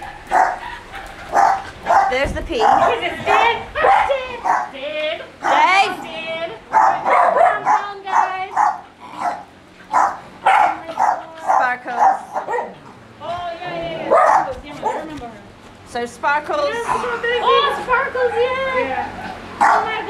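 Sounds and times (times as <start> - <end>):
dogs and puppies calling: 0.0 - 15.6, 16.6 - 20.0
people's voices: 1.9 - 8.7, 13.2 - 20.0.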